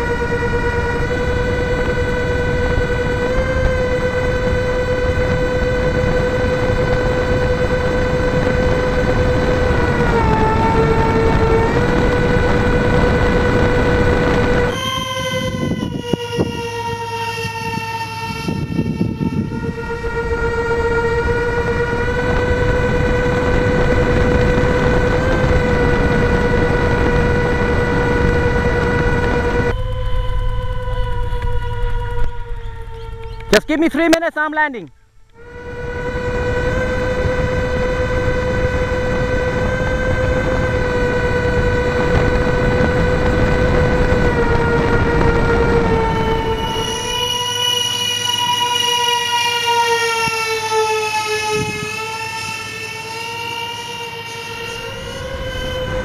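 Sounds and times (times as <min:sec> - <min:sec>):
electric ducted fans whining: 0:00.0 - 0:56.0.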